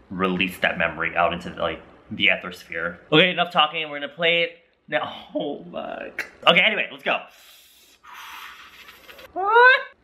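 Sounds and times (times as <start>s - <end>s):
breathy hiss: 7.2s - 9.3s
man exclaiming ooh: 9.4s - 10.0s.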